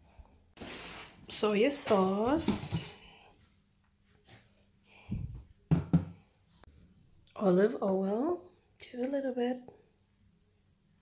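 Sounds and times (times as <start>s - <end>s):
bottles knocking on surface: 5.7s - 6.2s.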